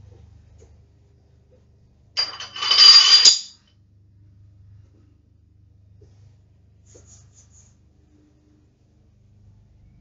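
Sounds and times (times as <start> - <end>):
metallic jingling clatter: 2.2 - 3.6.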